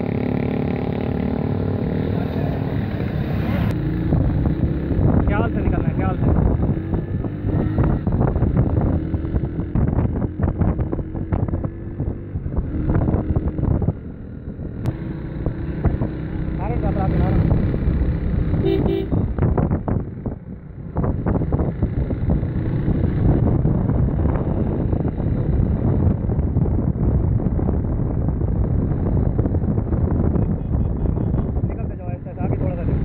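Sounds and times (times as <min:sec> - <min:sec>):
motorcycle engines running: 0:00.0 - 0:33.0
wind buffeting microphone: 0:02.6 - 0:33.0
horn toot: 0:18.6 - 0:19.3.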